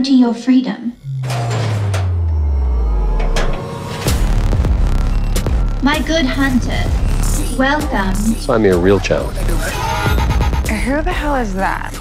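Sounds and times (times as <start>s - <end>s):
deep bass tone sliding downward: 0.9s - 9.7s
sharp hits: 1.0s - 8.2s.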